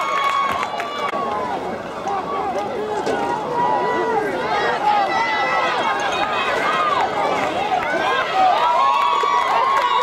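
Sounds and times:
many voices shouting and yelling: 0.0s - 10.0s
spectators cheering: 0.0s - 10.0s.

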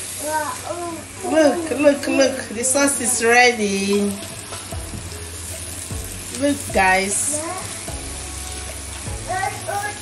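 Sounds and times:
sauce sizzling in a frying pan: 0.0s - 10.0s.

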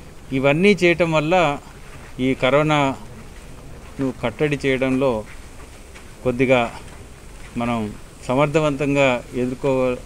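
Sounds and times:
man speaking: 0.3s - 5.3s, 6.2s - 6.9s, 7.5s - 10.0s.

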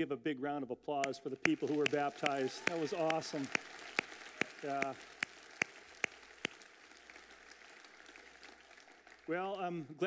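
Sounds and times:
sharp hand claps close by: 1.0s - 9.2s
congregation applauding: 1.3s - 9.9s.

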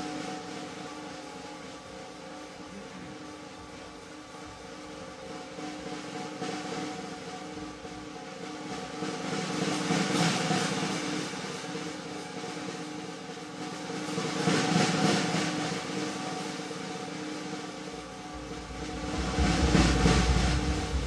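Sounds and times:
low sustained drone: 18.0s - 21.0s
snare drum roll: 18.4s - 21.0s.

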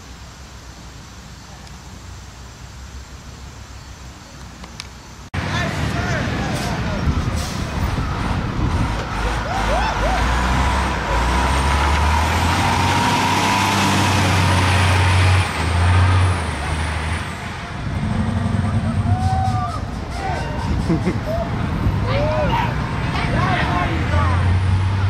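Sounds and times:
coach diesel engine passing: 5.4s - 25.0s.

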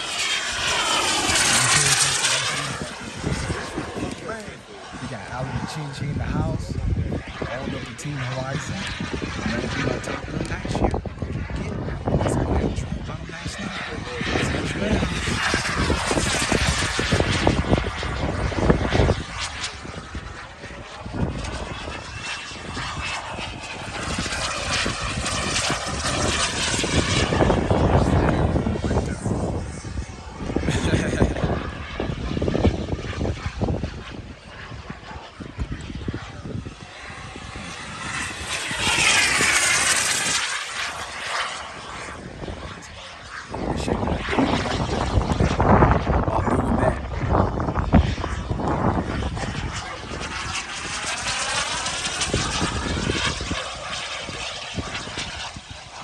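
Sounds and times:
model jet turbine passing: 0.0s - 56.0s.

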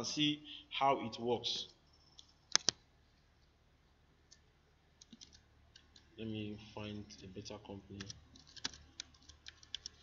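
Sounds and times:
computer mouse clicks: 2.1s - 2.8s, 4.3s - 6.1s, 8.0s - 10.0s.

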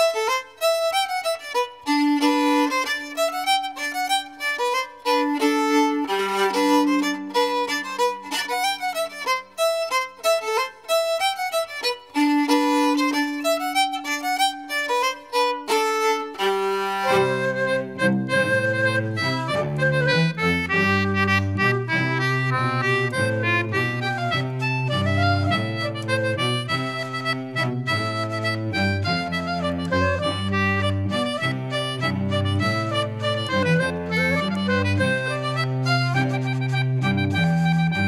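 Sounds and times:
solo fiddle: 0.0s - 38.0s
squeezebox melody: 17.0s - 20.8s
bass line: 17.1s - 38.0s.

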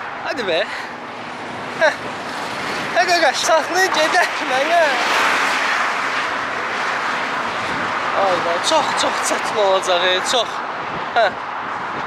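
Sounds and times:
highway traffic passing: 0.0s - 12.0s.

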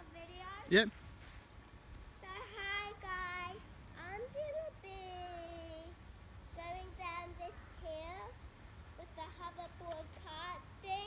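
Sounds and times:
child singing: 9.0s - 11.0s.

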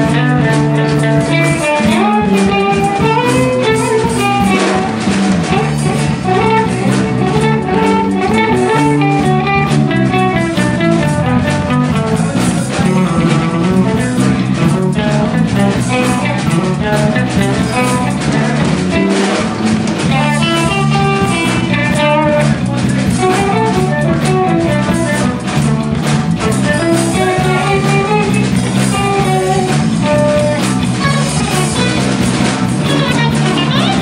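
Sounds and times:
guitar melodic line: 0.0s - 34.0s
live funk band playing: 0.0s - 34.0s.

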